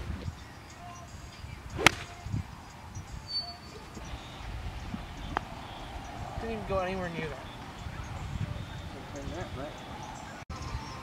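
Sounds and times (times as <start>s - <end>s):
golf club striking ball: 1.8s - 2.2s.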